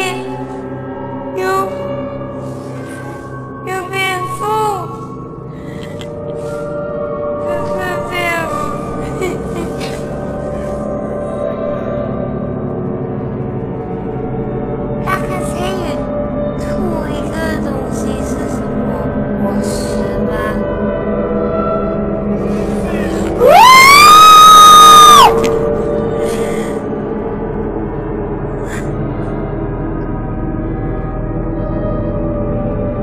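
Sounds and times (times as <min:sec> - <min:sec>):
eerie music drone: 0:00.0 - 0:33.0
high-pitched scream: 0:23.4 - 0:25.5.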